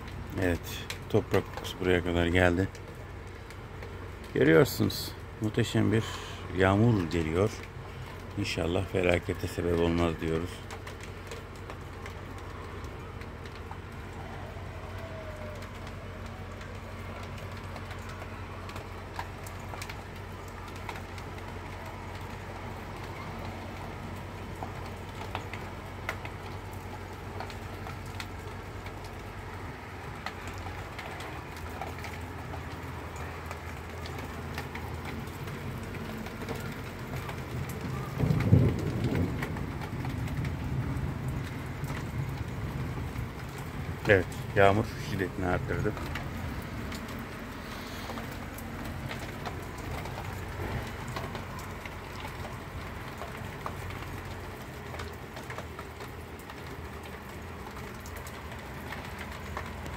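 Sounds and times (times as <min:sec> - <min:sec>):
heavy rain hissing: 0:00.0 - 0:59.9.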